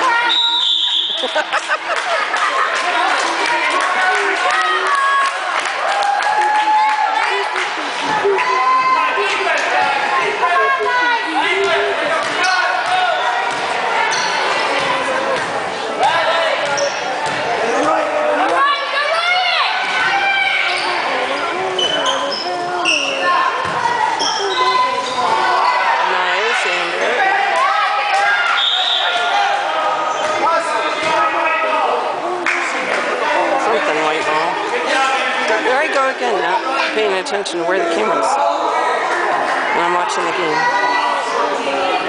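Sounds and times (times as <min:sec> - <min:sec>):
voices echoing in gym: 0:00.0 - 0:42.0
referee's whistle: 0:00.2 - 0:01.4, 0:28.5 - 0:29.3.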